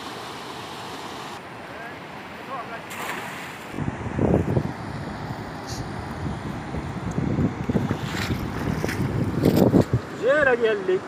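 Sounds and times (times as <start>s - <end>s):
fast river rushing: 0.0s - 6.8s
wind buffeting microphone: 3.7s - 10.4s.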